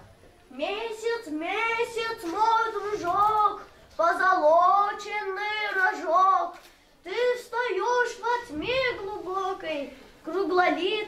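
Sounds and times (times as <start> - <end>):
child singing: 0.6 - 11.0.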